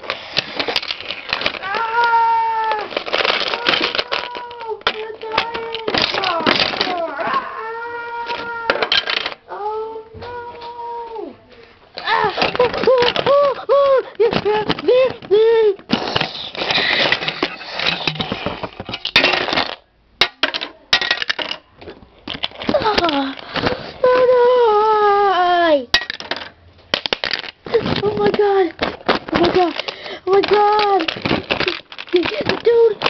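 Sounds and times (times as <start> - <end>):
plastic bricks clattering: 0.0 - 7.4, 8.2 - 9.4, 12.0 - 24.5, 25.9 - 33.0
child wailing: 1.6 - 11.4, 12.0 - 15.8.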